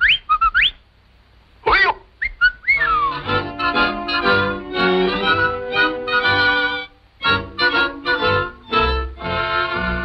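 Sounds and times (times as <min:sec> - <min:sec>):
whistled cartoon chirps: 0:00.0 - 0:00.8, 0:02.2 - 0:03.4
falling whistle glide: 0:02.3 - 0:03.3
music: 0:02.8 - 0:10.0.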